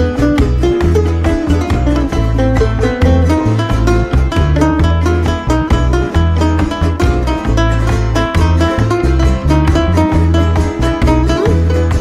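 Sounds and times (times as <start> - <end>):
double bass low notes: 0.0 - 12.0
plucked string melody: 0.0 - 12.0
strummed guitars: 0.0 - 12.0.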